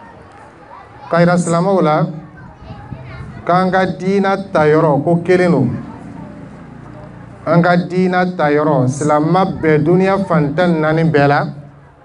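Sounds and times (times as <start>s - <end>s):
man speaking into a microphone: 1.1s - 2.3s, 3.4s - 6.4s, 7.4s - 11.8s.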